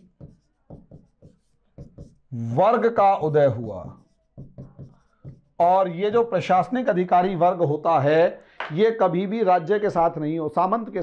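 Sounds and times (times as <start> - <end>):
marker writing on whiteboard: 0.0 - 7.3.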